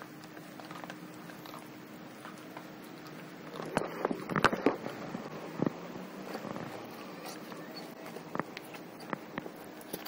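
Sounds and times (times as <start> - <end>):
dog gnawing rubber toy: 0.0 - 10.0.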